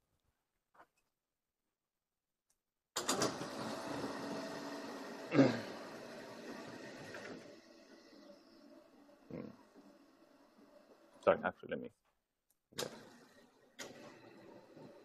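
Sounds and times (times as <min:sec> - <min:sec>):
man clearing his throat: 0:05.3 - 0:05.8
man humming low hmm: 0:09.3 - 0:09.6.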